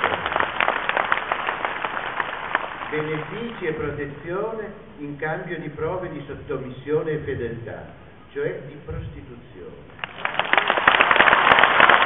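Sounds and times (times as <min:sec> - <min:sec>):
crowd applauding: 0:00.0 - 0:03.9, 0:10.0 - 0:12.0.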